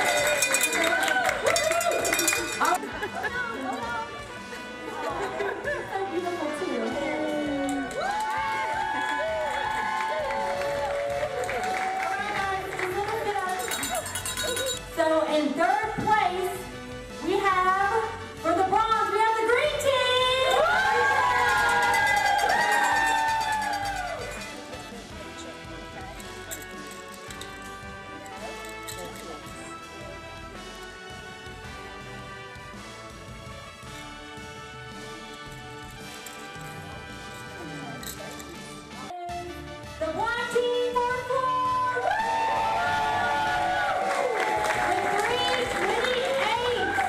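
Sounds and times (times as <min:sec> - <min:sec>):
group cheering woo: 0:00.0 - 0:02.8, 0:07.8 - 0:12.6, 0:20.4 - 0:24.6, 0:41.4 - 0:47.0
background music: 0:00.0 - 0:47.0.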